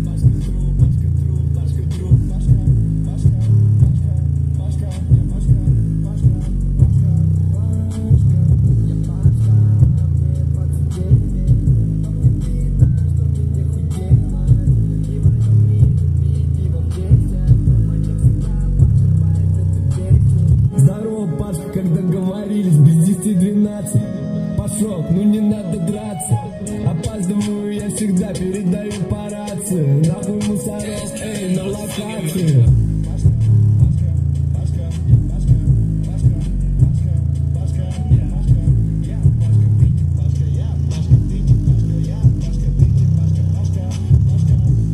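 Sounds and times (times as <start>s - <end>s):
bass-heavy rap beat: 0.0s - 44.9s.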